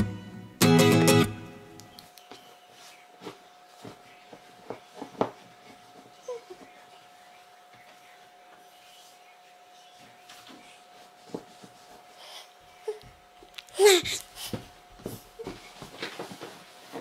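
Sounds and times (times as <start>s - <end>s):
acoustic guitar chord ringing: 0.0s - 1.7s
faint steady hum: 1.3s - 17.0s.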